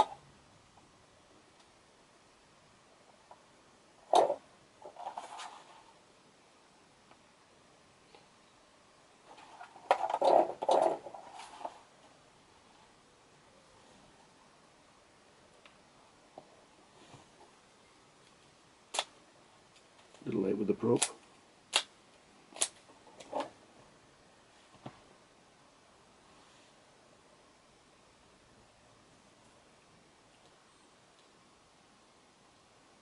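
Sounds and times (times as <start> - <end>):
faint room hiss: 0.0 - 33.0
rubbing and clatter: 4.1 - 6.0, 9.2 - 11.9.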